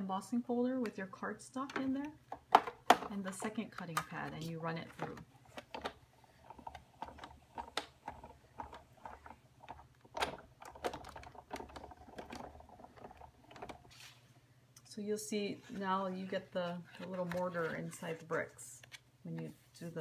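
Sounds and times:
irregular clicks and knocks: 1.6 - 14.0.

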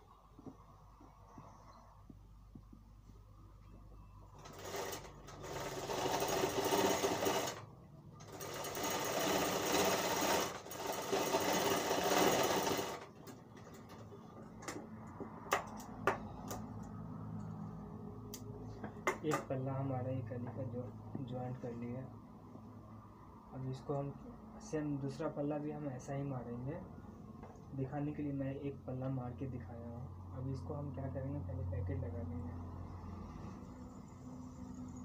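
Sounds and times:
sewing machine stitching: 4.4 - 13.9.

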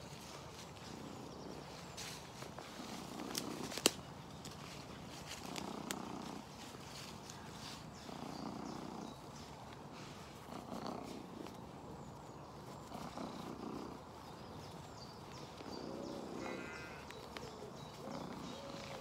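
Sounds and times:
small rustles: 0.0 - 19.0
cat purring: 5.3 - 9.4, 10.0 - 11.9, 12.6 - 14.4, 18.0 - 19.0.

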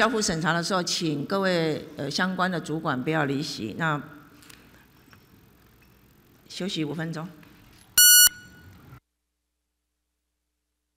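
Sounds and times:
electronic beep: 8.0 - 8.5.

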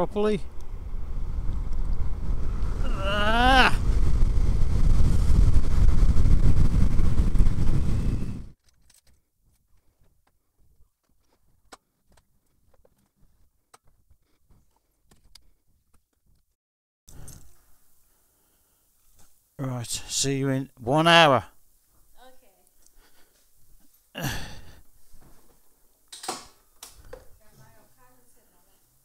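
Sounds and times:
road rumble: 0.0 - 8.5
wind buffeting: 0.0 - 8.6.

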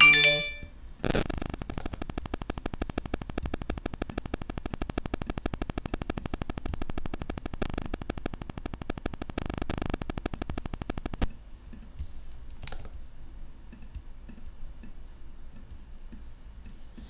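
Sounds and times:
rapid computer clicking: 0.0 - 11.4.

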